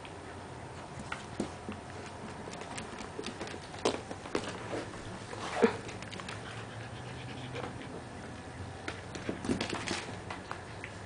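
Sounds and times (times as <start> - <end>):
puppy scuffling with toy: 1.0 - 8.0, 9.0 - 10.4
claws clicking on wooden floor: 1.1 - 4.6
puppy panting: 6.0 - 8.5.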